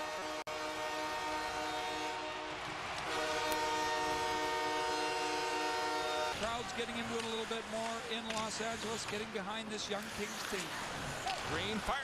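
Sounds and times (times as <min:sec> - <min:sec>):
goal horn blaring: 0:00.0 - 0:06.6
crowd cheering: 0:00.2 - 0:09.6.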